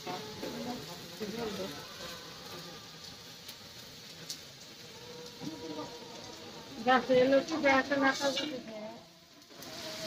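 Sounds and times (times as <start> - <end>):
meat sizzling: 0.0 - 10.0.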